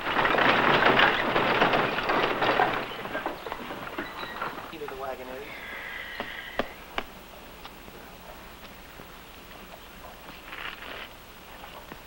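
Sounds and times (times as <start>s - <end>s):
wagon wheels rattling: 0.0s - 5.8s
horse hoofbeats: 0.7s - 7.1s.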